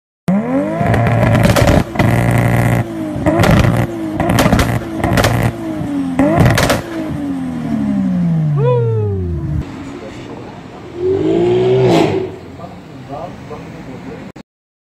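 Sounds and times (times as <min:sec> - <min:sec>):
car engine revving: 0:00.3 - 0:10.1, 0:10.8 - 0:12.9
exhaust cracks: 0:00.8 - 0:05.6, 0:06.2 - 0:07.2.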